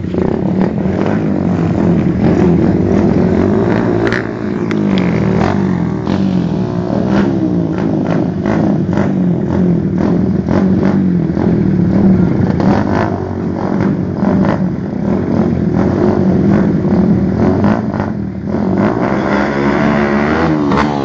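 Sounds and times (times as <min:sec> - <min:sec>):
motorcycle engines revving: 0:00.0 - 0:21.0.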